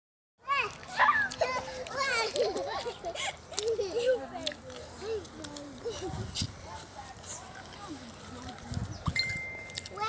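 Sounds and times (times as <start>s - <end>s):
small children babbling and squealing: 0.4s - 6.6s.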